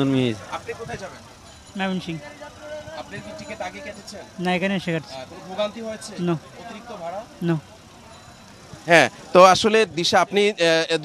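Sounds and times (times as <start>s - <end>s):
steady vehicle noise: 0.0s - 11.0s
voices talking: 0.0s - 11.0s.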